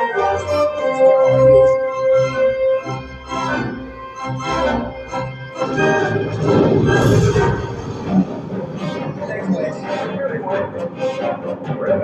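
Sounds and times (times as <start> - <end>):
orchestra sustaining notes: 4.8 - 10.8.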